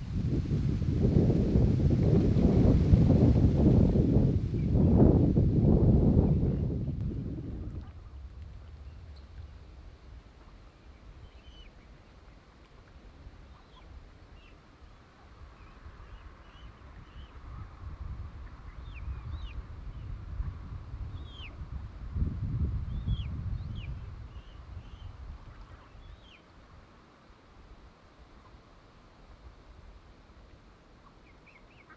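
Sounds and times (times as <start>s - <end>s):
low rumbling noise: 0.0s - 12.3s.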